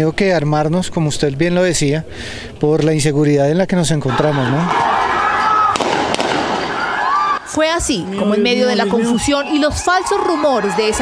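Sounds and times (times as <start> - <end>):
street commotion with voices: 0.0 - 11.0
sharp bangs: 5.6 - 7.2.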